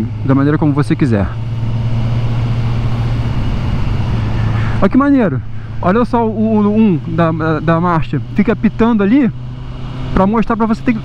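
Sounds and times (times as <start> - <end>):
motorcycle engine running: 0.0 - 11.0
wind and road noise: 0.0 - 11.0.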